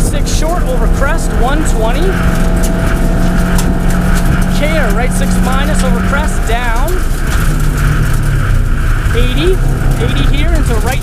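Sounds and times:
rally car engine running hard: 0.0s - 11.0s
tyres on gravel: 0.0s - 11.0s.

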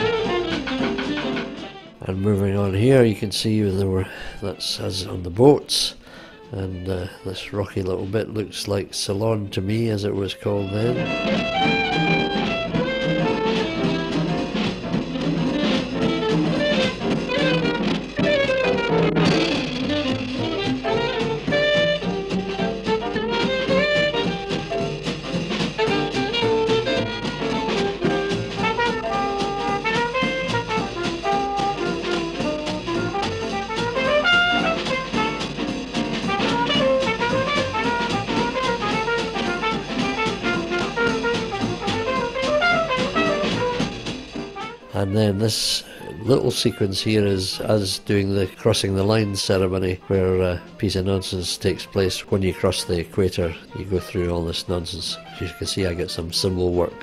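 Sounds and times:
drum kit: 0.0s - 57.0s
jazz band with horns: 0.0s - 57.0s.

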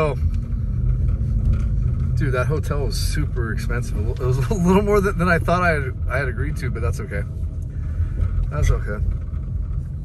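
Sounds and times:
car engine and tyre rumble: 0.0s - 10.0s.

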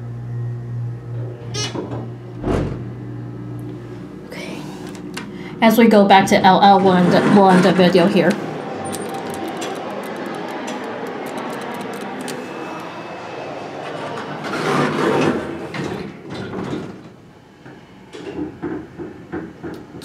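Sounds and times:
elevator doors sliding shut: 0.8s - 3.3s, 3.9s - 20.0s
steady background haze: 2.2s - 14.5s.

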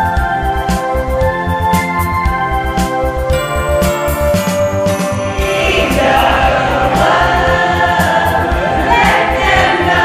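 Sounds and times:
backing music with beat: 0.0s - 10.0s
sleigh bells ringing: 3.3s - 10.0s
choir singing: 5.3s - 10.0s.

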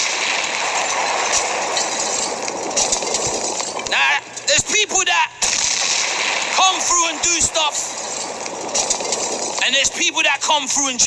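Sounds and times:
man speaking: 3.9s - 5.4s, 6.6s - 8.0s, 9.6s - 11.0s.

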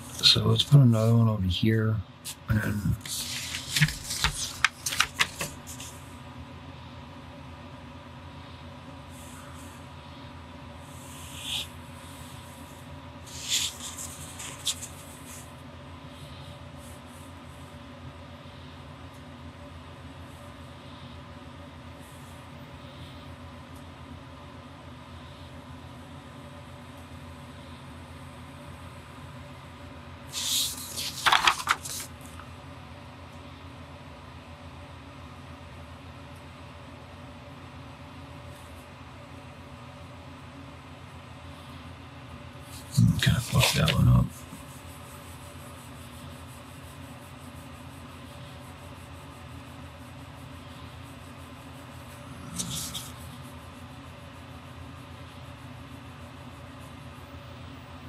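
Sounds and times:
faint room hum: 0.0s - 58.0s
pen scratching on paper: 10.8s - 15.5s, 42.7s - 57.3s.

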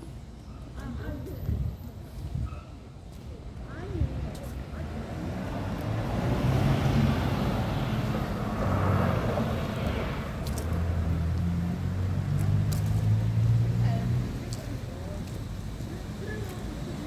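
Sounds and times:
car tyre noise passing: 4.2s - 14.4s.

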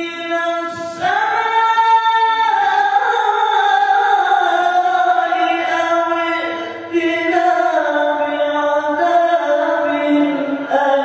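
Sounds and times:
person reciting melodically: 0.0s - 11.0s.

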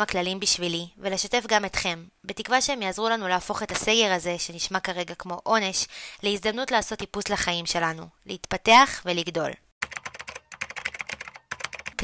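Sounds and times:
keyboard typing clicks: 9.8s - 12.0s.

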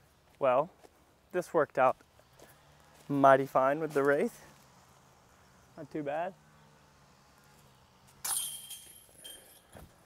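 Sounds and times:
disc hitting chain basket: 8.1s - 10.0s.

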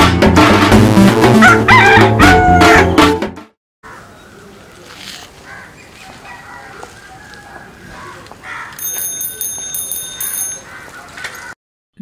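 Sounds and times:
bicycle bell ringing: 8.8s - 10.8s.

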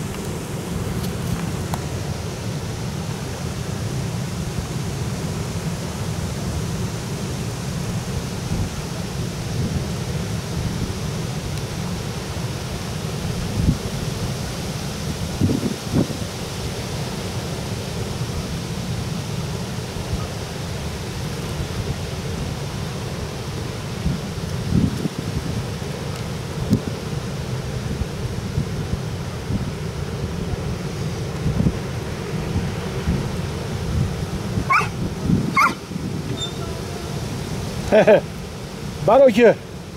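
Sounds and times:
wind buffeting microphone: 31.4s - 37.8s.

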